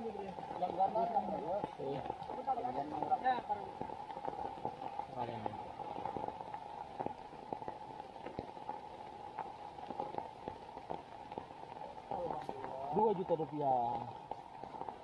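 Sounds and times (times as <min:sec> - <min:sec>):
rain dripping and pattering: 0:00.0 - 0:15.0.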